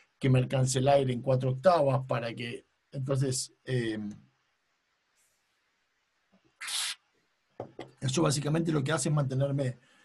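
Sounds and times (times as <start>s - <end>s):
slurping through a straw: 6.6s - 7.0s.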